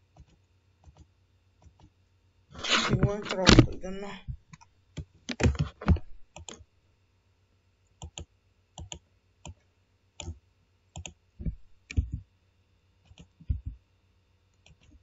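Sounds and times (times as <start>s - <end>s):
computer mouse clicking: 0.1s - 1.9s, 2.6s - 6.6s, 8.0s - 9.6s, 10.2s - 10.4s, 11.0s - 12.2s, 13.0s - 13.8s, 14.5s - 15.0s.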